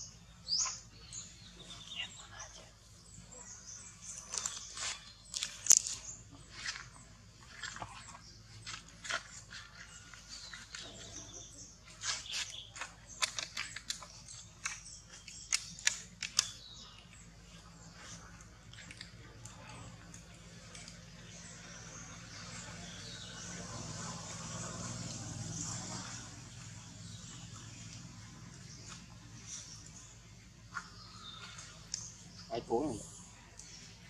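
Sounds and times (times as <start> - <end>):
dry husk and leaves crackling: 3.2 - 34.0.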